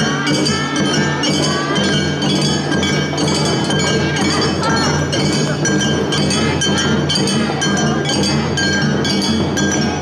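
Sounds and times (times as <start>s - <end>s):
street band music: 0.0s - 10.0s.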